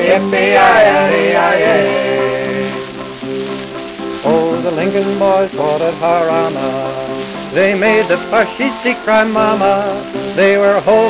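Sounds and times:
folk song on a record: 0.0s - 11.0s
record surface hiss and crackle: 0.0s - 11.0s.

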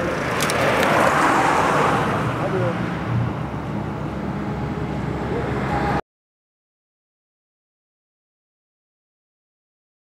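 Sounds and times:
highway low rumble: 0.0s - 6.0s.

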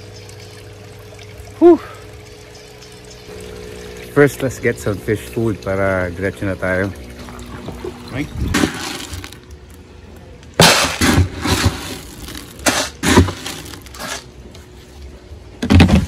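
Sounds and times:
plastic scoop digging into pellets: 8.5s - 9.4s, 10.6s - 14.3s
pellets rattling and scraping: 8.5s - 9.5s, 10.6s - 14.3s.

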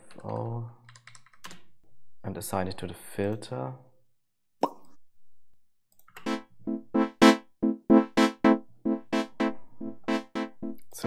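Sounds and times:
synthesizer chord stabs: 6.2s - 11.0s.

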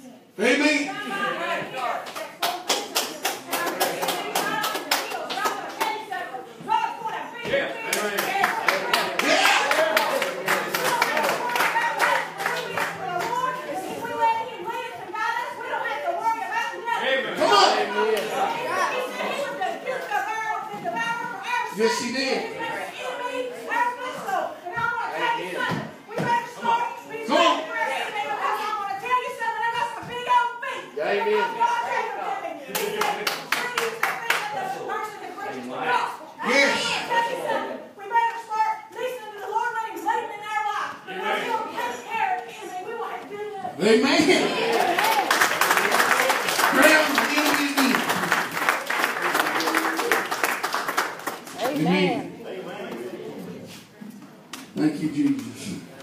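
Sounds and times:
voices: 0.0s - 56.0s
rhythmic hand clapping: 2.0s - 6.0s, 44.8s - 51.8s.

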